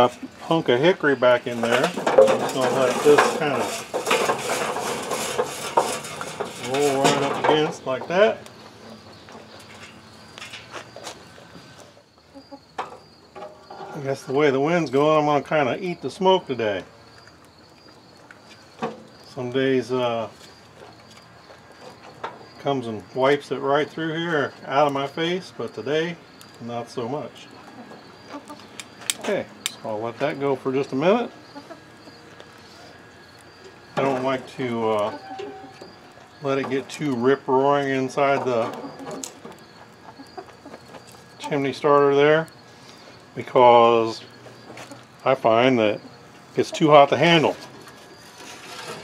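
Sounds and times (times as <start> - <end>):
high insect drone: 0.0 - 49.0
metal tongs nudging charcoal: 1.4 - 11.8, 46.6 - 49.0
metal tongs clicking on charcoal: 28.7 - 29.8.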